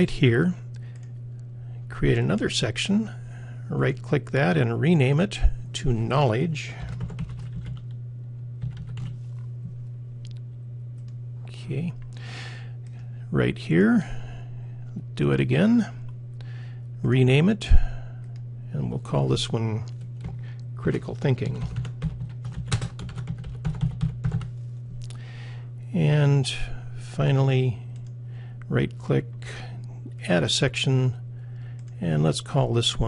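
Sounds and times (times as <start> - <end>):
steady low hum: 0.0 - 33.0
keyboard typing: 6.8 - 7.9, 8.6 - 9.1, 21.6 - 24.5.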